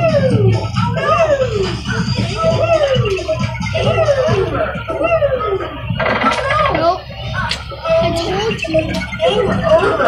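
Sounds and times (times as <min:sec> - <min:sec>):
arcade game music and jingles: 0:00.0 - 0:10.0
voices: 0:00.0 - 0:10.0.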